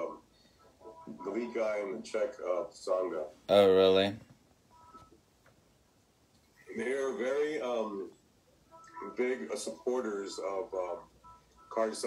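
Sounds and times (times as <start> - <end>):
man's voice: 9.0 - 11.1, 11.7 - 12.0.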